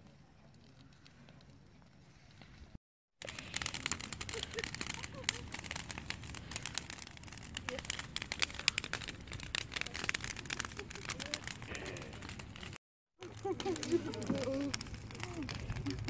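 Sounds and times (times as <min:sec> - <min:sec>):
bonfire crackling and popping: 0:00.0 - 0:16.0.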